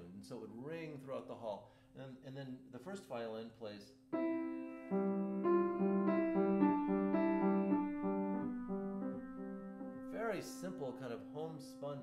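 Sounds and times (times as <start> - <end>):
grand piano slow melody: 4.2 - 12.0
held piano note: 4.2 - 12.0.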